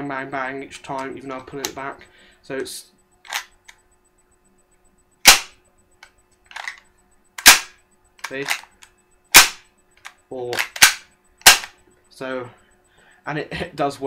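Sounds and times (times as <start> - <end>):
spring piston bang: 5.2 - 5.6, 7.4 - 7.8, 9.3 - 9.6.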